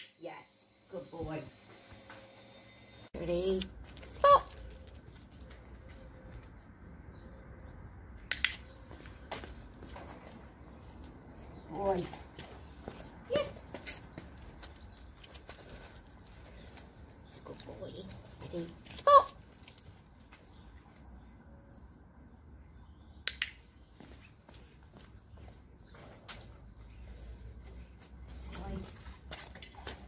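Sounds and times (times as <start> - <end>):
sharp clicks: 8.2 - 8.7, 23.2 - 23.6.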